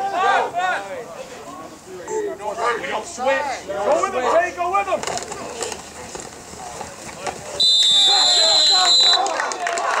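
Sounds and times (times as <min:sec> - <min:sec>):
players shouting: 0:07.5 - 0:10.0
whistle long blast: 0:07.6 - 0:09.3.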